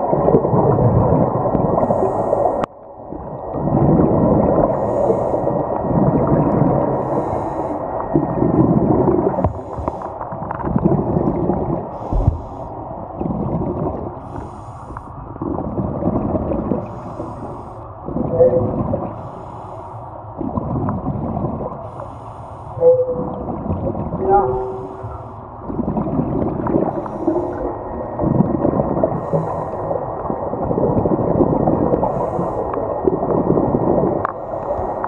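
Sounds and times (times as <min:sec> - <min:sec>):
muffled exhaust bubbles underwater: 0:00.0 - 0:35.0.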